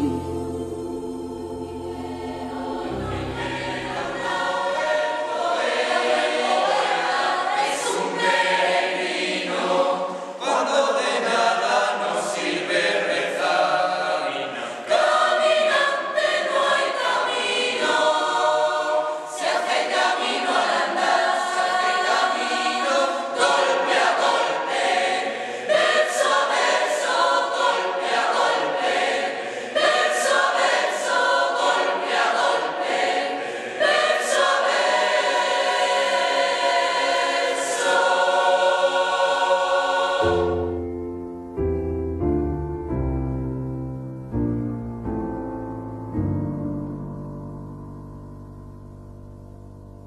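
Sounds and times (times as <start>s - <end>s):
choir singing: 0.0s - 41.1s.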